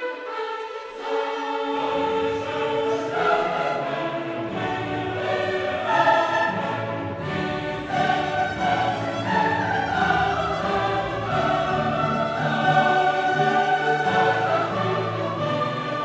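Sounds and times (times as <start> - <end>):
choir singing with orchestra: 0.0 - 16.0.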